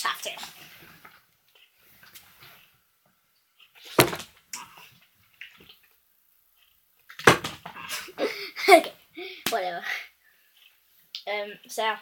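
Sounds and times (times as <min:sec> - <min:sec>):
knock: 0:04.0 - 0:04.3
boy laughing: 0:07.9 - 0:09.4.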